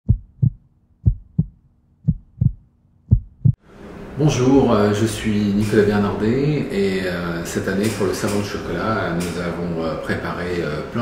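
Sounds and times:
heartbeat thumps: 0.0 - 3.6.

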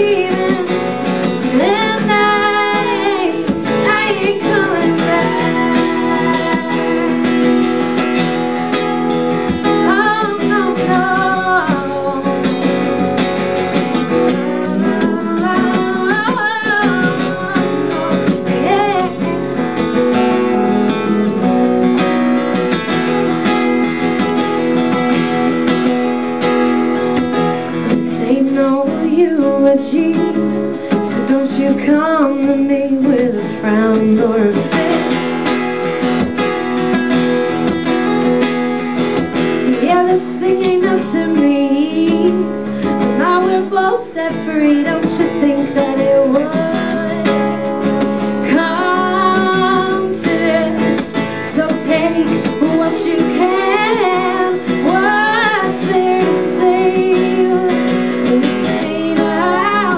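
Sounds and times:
woman singing: 0.0 - 22.0, 27.8 - 36.1, 39.6 - 59.9
acoustic guitar strumming: 0.0 - 59.9.

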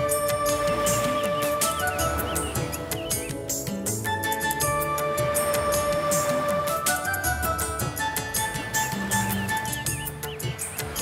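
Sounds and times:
background music: 0.0 - 11.0
small birds chirping: 0.2 - 4.6, 7.2 - 11.0.

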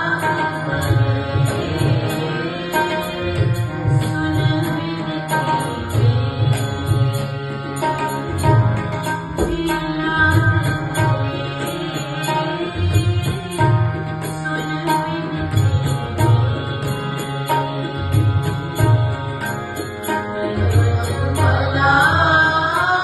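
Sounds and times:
sustained instrumental accompaniment: 0.0 - 23.0
woman singing a hymn: 4.0 - 5.2, 9.4 - 13.2, 21.5 - 23.0.

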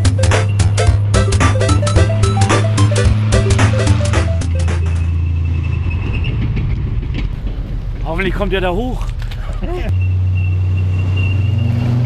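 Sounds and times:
tank engine rumbling: 0.0 - 12.0.

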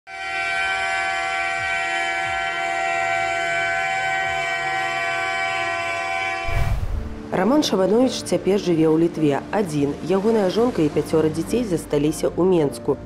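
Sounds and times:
truck horn blast: 0.1 - 6.6.

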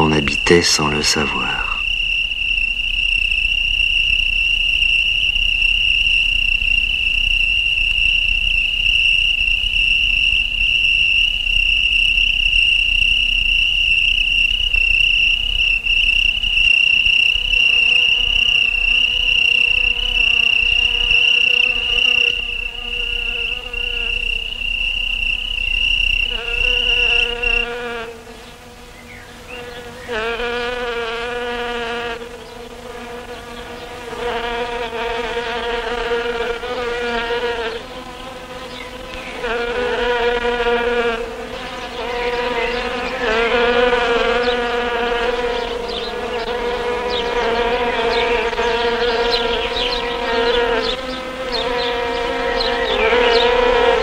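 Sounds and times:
insects buzzing: 0.0 - 54.0.

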